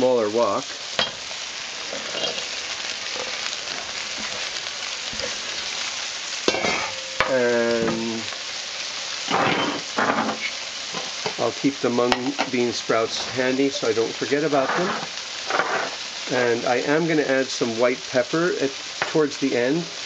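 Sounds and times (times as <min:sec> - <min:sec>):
food sizzling in hot oil: 0:00.0 - 0:20.0.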